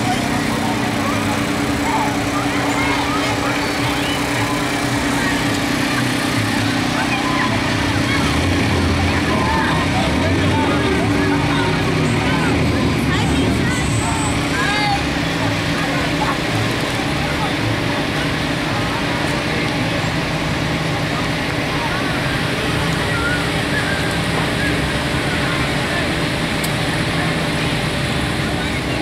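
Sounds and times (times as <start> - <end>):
crowd chattering and calling: 0.0 - 29.0
pickup truck engines running: 0.0 - 29.0.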